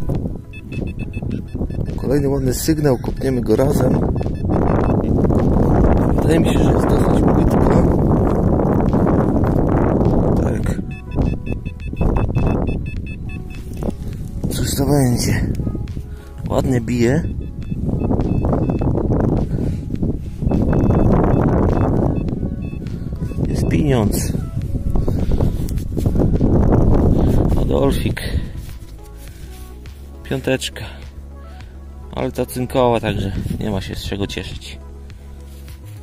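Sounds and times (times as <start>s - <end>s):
metal detector beeps: 0.0s - 5.1s, 6.3s - 7.8s, 10.6s - 14.0s, 16.9s - 19.0s, 20.4s - 24.5s
wind buffeting microphone: 0.0s - 29.5s.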